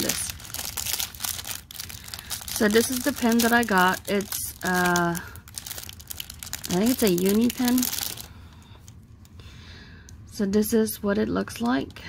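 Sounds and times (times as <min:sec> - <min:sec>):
plastic wrapper crinkling: 0:00.0 - 0:09.3.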